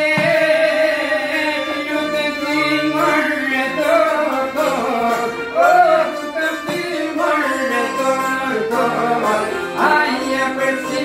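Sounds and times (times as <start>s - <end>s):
accordion: 0.0s - 11.0s
man singing: 0.0s - 11.0s
plucked lutes: 0.0s - 11.0s
violin: 0.0s - 11.0s.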